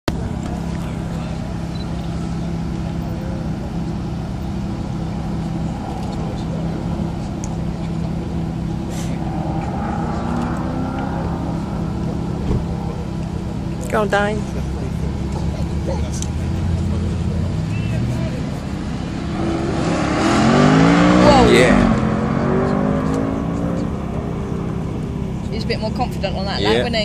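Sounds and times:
car engine idling: 0.1 - 27.0.

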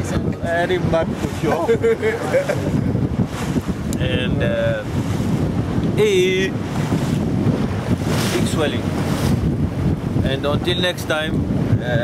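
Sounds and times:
wind buffeting microphone: 0.0 - 12.0
man's voice: 4.0 - 4.9.

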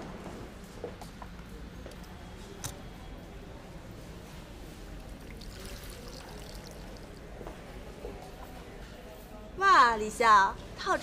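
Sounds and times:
water pouring onto soil: 5.0 - 7.3.

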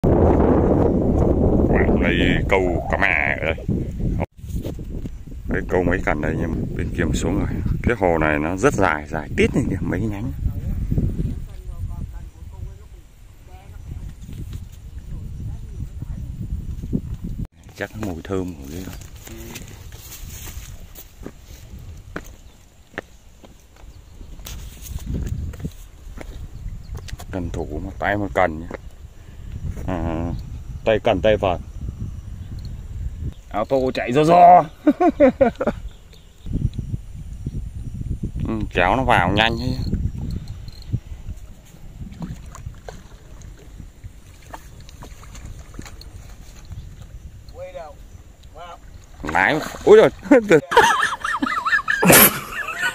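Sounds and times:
wind rumble on microphone: 0.0 - 22.7, 23.6 - 50.4
footsteps on loose rocks: 17.7 - 27.3.

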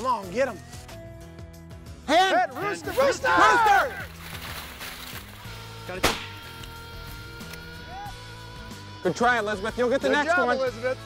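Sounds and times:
shotgun shot: 6.0 - 6.5.

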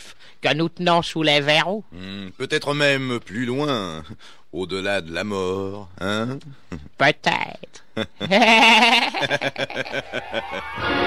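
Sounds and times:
gloating laughter: 8.0 - 11.0.

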